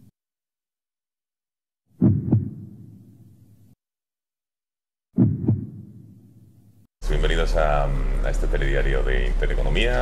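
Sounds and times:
deep heartbeat thumps: 2.0 - 3.1, 5.2 - 6.3.

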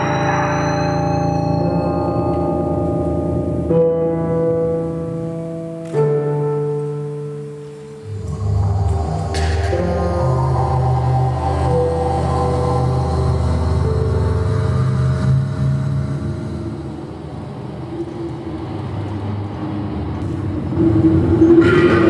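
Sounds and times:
low droning music: 0.0 - 22.0
rumbling noise with hum: 8.0 - 22.0.

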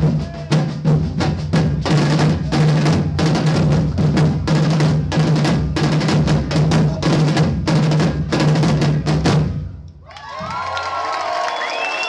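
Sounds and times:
samba drum ensemble: 0.0 - 9.8
crowd cheering and whooping: 10.0 - 12.0.

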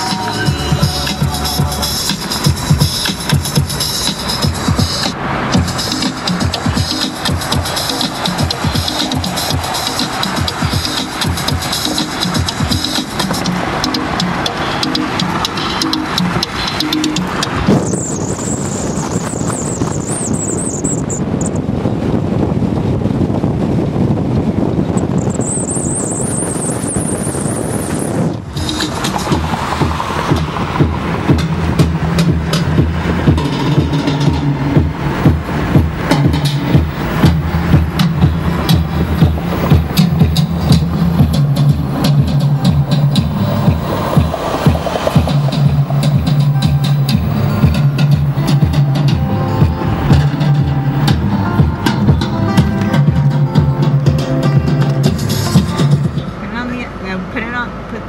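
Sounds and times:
high whine: 0.0 - 21.8, 24.9 - 57.1
music on car stereo: 0.0 - 57.5
wind and road noise: 0.0 - 58.0.

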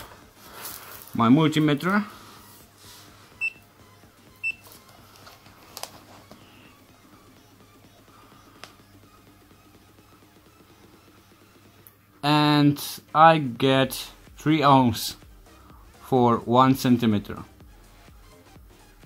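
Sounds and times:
multimeter high beeps: 3.4 - 3.7, 4.3 - 4.7.

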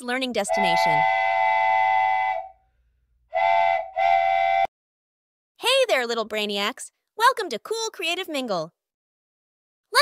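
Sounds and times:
wooden train whistle blowing: 0.5 - 2.6, 3.3 - 4.7.

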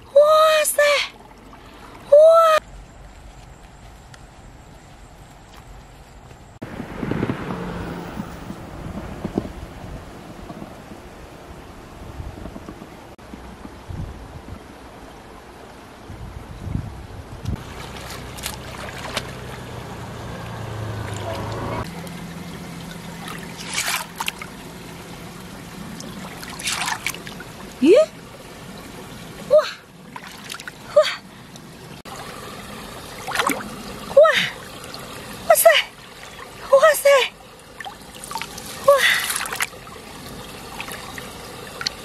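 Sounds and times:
woman exclaiming whoa: 2.1 - 2.6
hands splashing in a stream: 17.6 - 19.6, 23.0 - 24.6, 26.0 - 27.5, 30.1 - 31.0, 33.1 - 35.1, 37.7 - 40.0.

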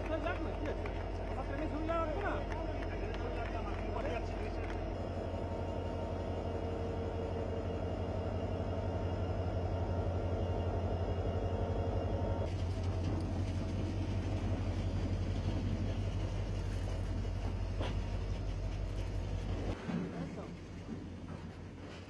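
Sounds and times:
wagons rolling on rails: 0.0 - 5.8, 12.5 - 22.0
diesel locomotive engine rumbling: 0.0 - 22.0.

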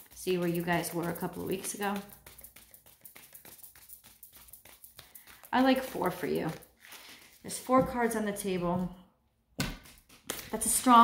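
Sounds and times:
cards tapping and rustling: 0.0 - 8.0, 9.6 - 11.0.

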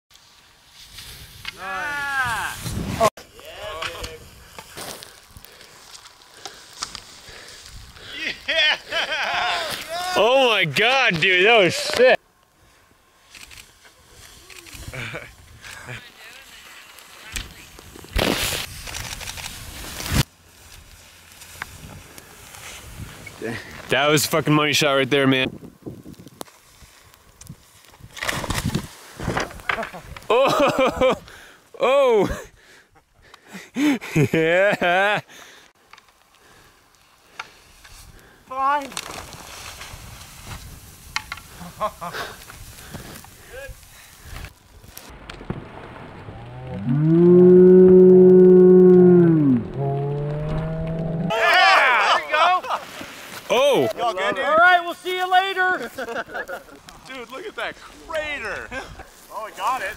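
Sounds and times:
faint outdoor hiss: 0.1 - 59.9
person calling out: 1.6 - 2.6
person shouting: 1.6 - 2.6, 9.3 - 10.5, 51.3 - 52.6
person whooping: 1.6 - 2.6, 8.1 - 10.4, 47.4 - 50.1, 51.2 - 52.7.

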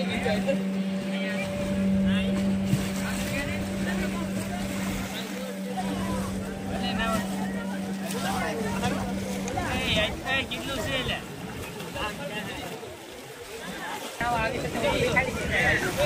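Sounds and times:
steady low hum: 0.0 - 11.9
voices of people bathing: 0.0 - 16.0.

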